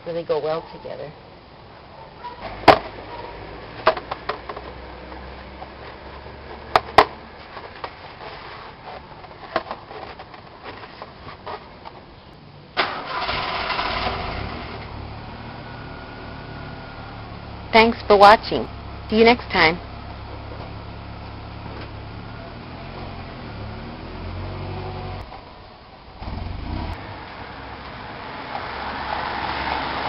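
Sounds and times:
car engine cranking and idling: 12.7 - 30.0.

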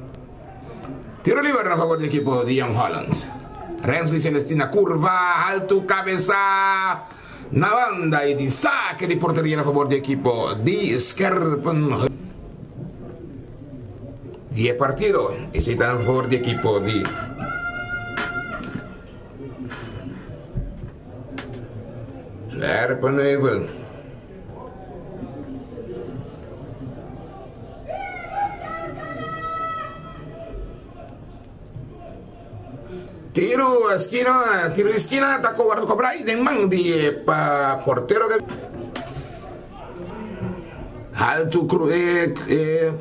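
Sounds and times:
faint distant voices: 5.6 - 37.0, 37.6 - 42.8.

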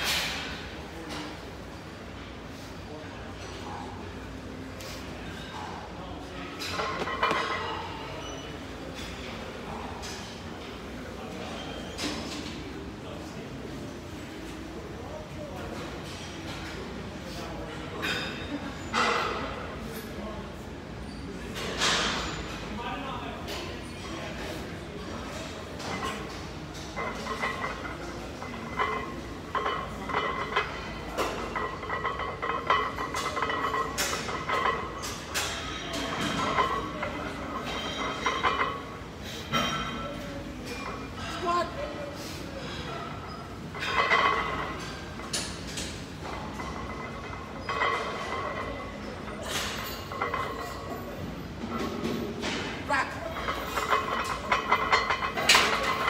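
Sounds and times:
weight plates clinking: 53.3 - 56.0.

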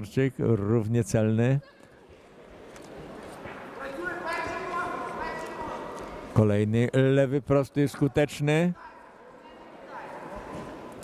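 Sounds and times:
voices shouting in a hall: 8.8 - 11.0.

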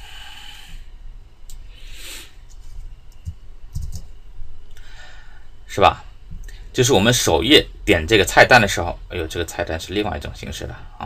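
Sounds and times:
person breathing into microphone: 0.0 - 0.9.

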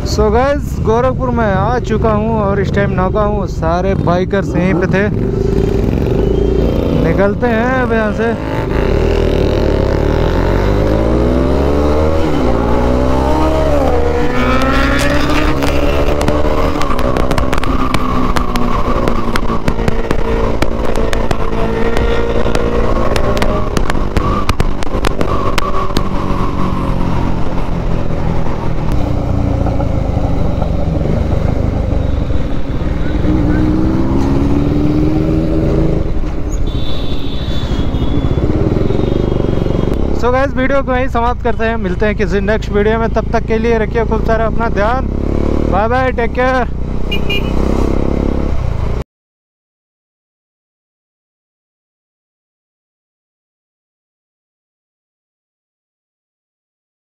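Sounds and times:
road and wind rush: 0.0 - 49.0
motorcycle engine revving through gears: 3.8 - 36.6, 37.7 - 40.4, 42.3 - 49.0.

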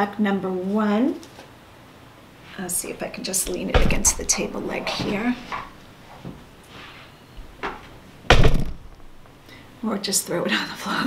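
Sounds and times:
plastic plaque landing thunk: 7.6 - 9.2.

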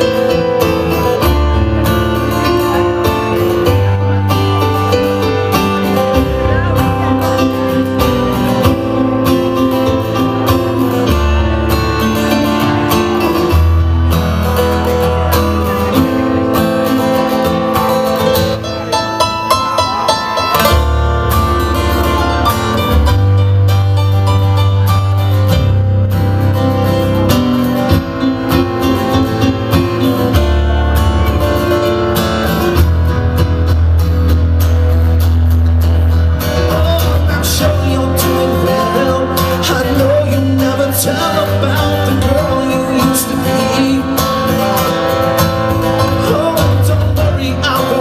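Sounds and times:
acoustic guitar strumming: 0.0 - 48.0
keyboard chords and bass notes: 0.0 - 48.0.

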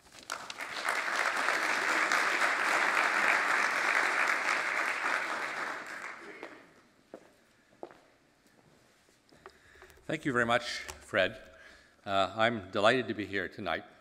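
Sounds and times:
audience applauding: 0.0 - 6.8.

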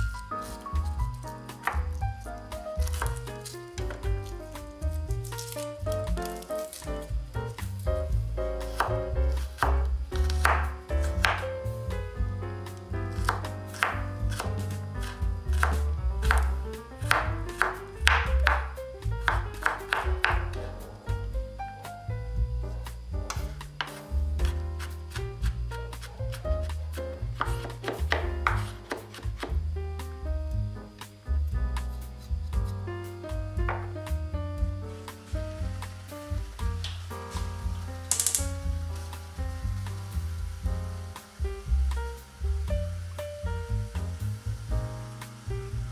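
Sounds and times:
background music: 0.0 - 25.1
knife chopping on wooden board: 0.4 - 7.8, 8.6 - 11.5, 13.1 - 20.7, 23.3 - 29.6.

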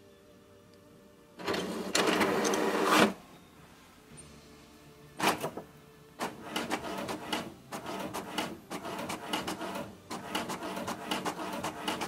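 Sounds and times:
printer clicks and whirs: 1.4 - 3.2, 5.2 - 5.6, 6.2 - 12.0.

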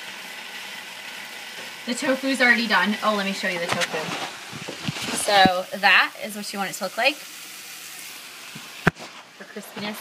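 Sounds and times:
vegetables sizzling in a pan: 0.0 - 10.0
person speaking: 2.0 - 4.3.

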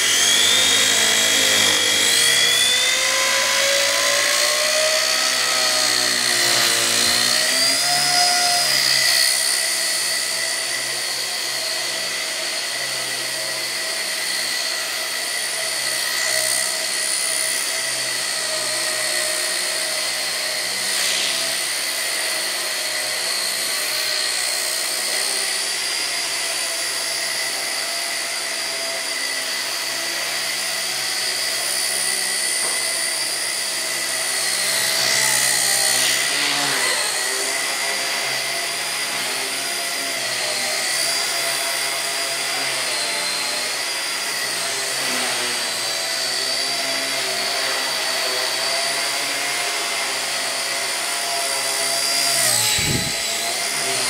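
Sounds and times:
toy helicopter motor whine: 0.0 - 54.0.

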